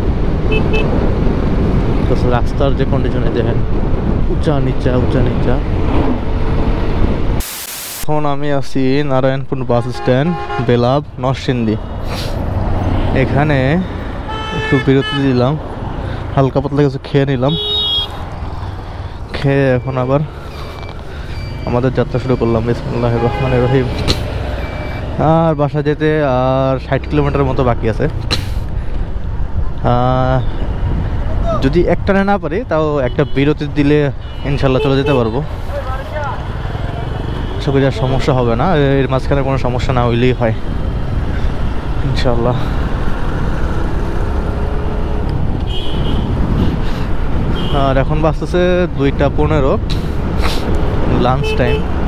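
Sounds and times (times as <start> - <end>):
motorcycle engine and wind rumble: 0.0 - 7.4, 40.1 - 52.0
tyre and road noise: 0.0 - 52.0
man talking: 2.0 - 3.6, 4.3 - 5.7, 8.0 - 11.9, 13.1 - 14.0, 14.6 - 15.6, 16.3 - 17.7, 19.3 - 20.4, 21.6 - 24.1, 25.1 - 28.2, 29.8 - 30.5, 31.4 - 40.6, 42.0 - 42.8, 47.7 - 50.1, 51.0 - 51.9.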